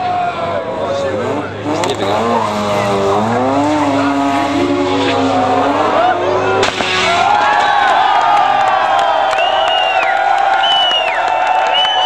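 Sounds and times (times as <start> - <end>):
rotary engine revving high: 1.1 - 7.6.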